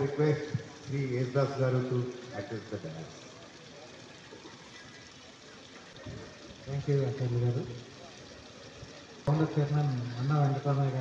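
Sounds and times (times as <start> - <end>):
background noise of seated gathering: 0.0 - 11.0.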